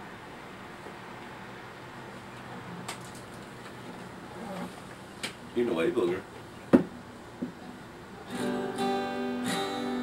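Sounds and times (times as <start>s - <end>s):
acoustic guitar strums: 7.4s - 10.0s.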